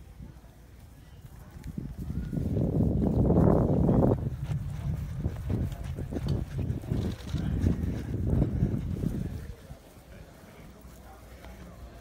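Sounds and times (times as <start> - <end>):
horse hooves trotting on grass: 0.3 - 12.0.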